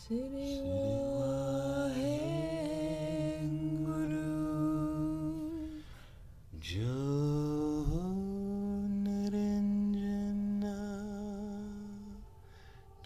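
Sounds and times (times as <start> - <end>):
man humming in long tones: 0.0 - 6.0, 6.6 - 13.0.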